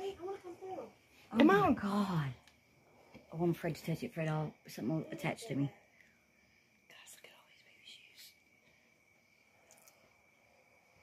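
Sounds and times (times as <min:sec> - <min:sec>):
faint whisper: 0:06.9 - 0:08.8.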